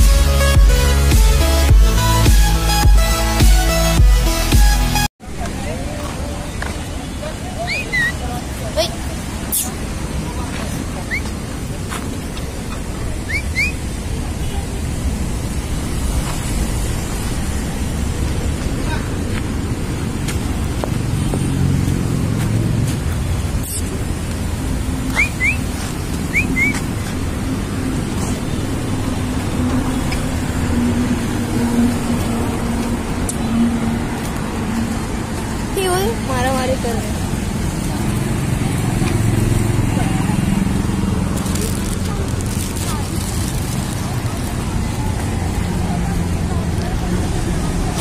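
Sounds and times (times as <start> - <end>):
road traffic rumble: 0.0 - 48.0
faint voices: 25.9 - 48.0.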